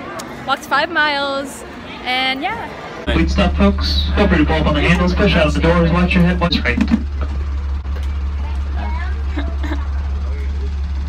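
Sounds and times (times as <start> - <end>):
faint voices: 1.6 - 11.0
low drone of moving tram: 2.8 - 11.0.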